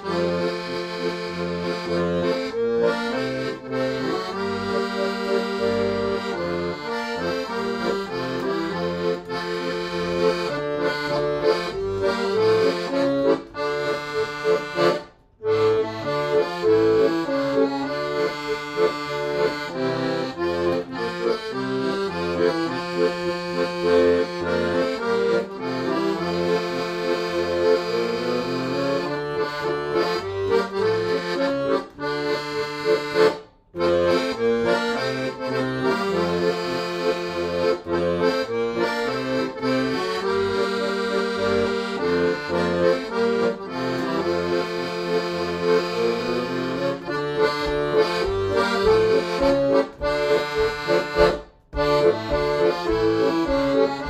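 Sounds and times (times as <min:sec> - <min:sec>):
piano accordion playing a tune: 0:00.0 - 0:54.0.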